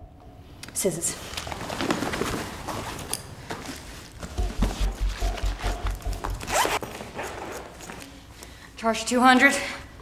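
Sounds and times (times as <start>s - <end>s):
fabric ripping: 6.4s - 6.8s.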